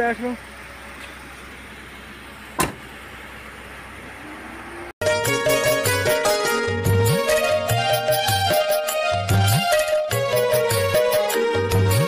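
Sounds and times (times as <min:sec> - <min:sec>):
car door shutting: 0:02.5 - 0:03.0.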